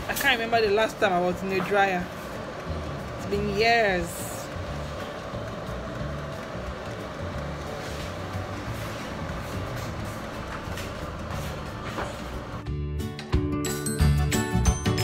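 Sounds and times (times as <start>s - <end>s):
music with bass beat: 2.5s - 15.0s.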